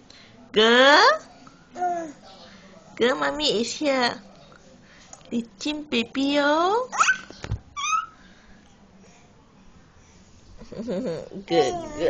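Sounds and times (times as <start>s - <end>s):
baby squealing: 6.9s - 8.2s, 11.6s - 12.0s.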